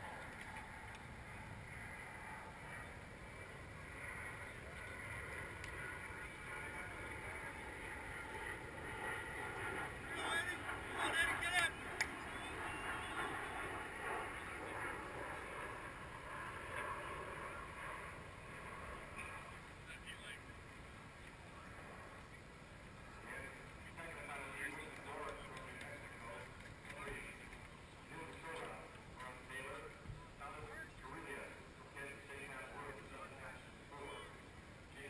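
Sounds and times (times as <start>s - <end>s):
outdoor background noise: 0.0s - 35.0s
faint distant voices: 2.2s - 15.8s, 16.9s - 35.0s.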